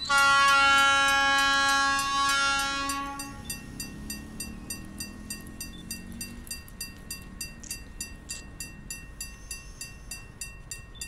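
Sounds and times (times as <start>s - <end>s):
locomotive air horn blast: 0.0s - 3.4s.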